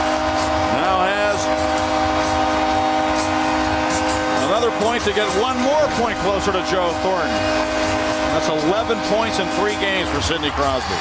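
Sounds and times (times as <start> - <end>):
arena goal horn blast: 0.0 - 11.0
crowd cheering: 0.0 - 11.0.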